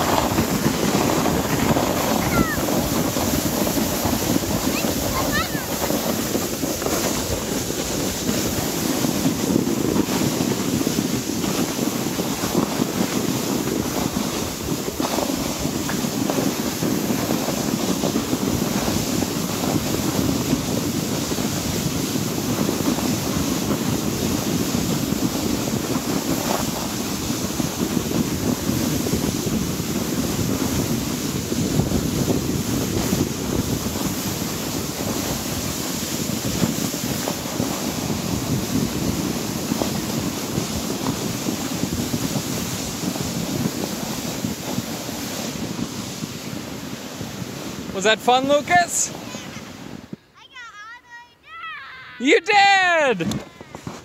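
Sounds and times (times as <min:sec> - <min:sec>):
wind buffeting the microphone: 0:00.0 - 0:50.3, 0:52.2 - 0:54.0.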